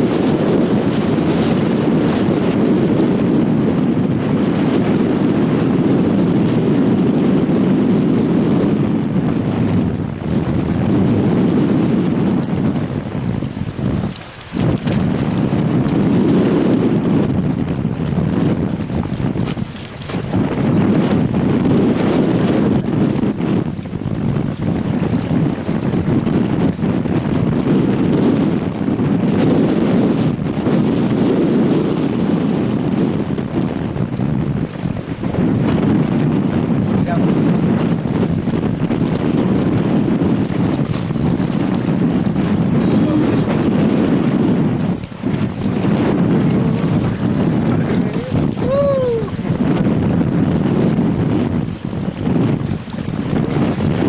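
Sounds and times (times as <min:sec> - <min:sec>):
wind buffeting microphone: 0:00.0 - 0:54.0
river water rushing: 0:13.8 - 0:15.8, 0:45.8 - 0:49.4.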